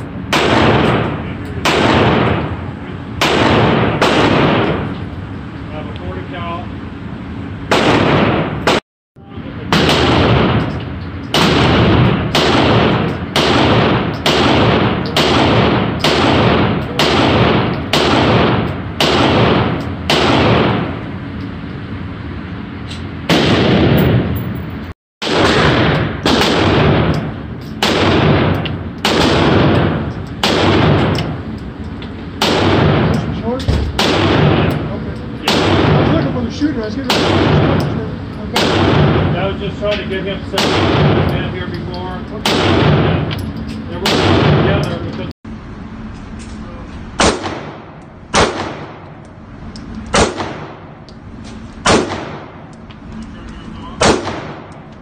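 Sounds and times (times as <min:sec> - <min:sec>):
pistol shots echoing indoors: 0:00.3 - 0:02.5, 0:03.2 - 0:04.9, 0:09.7 - 0:21.0, 0:25.2 - 0:31.3, 0:47.2 - 0:49.1, 0:54.0 - 0:54.8.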